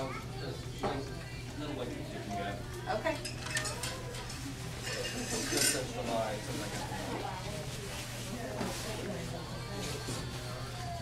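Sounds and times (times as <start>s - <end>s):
faint background murmur: 0.0s - 11.0s.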